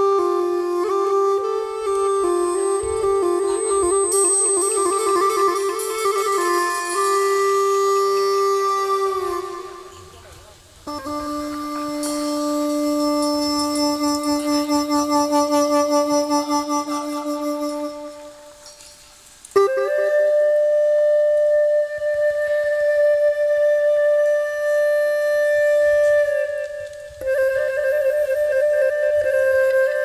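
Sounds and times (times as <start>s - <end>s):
bamboo flute melody: 0.0s - 30.0s.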